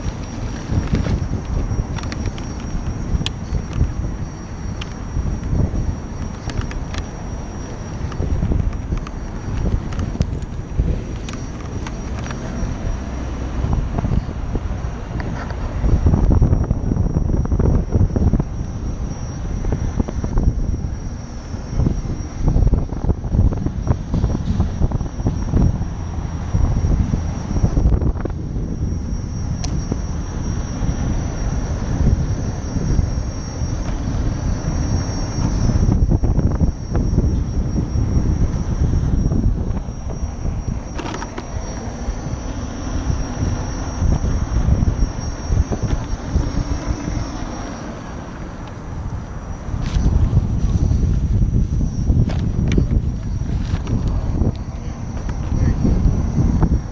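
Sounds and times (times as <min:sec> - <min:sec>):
high-pitched whine: 0:00.0 - 0:56.9
wind buffeting microphone: 0:00.0 - 0:56.9.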